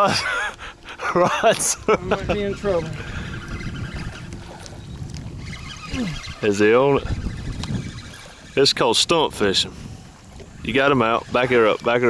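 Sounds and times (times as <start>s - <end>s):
small boat engine rumbling: 0.0s - 12.0s.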